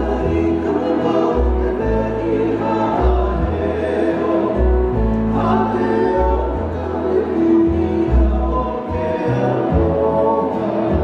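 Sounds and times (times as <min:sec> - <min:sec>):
men singing: 0:00.0 - 0:11.0
strummed acoustic guitars: 0:00.0 - 0:11.0
upright bass plucked notes: 0:00.0 - 0:11.0.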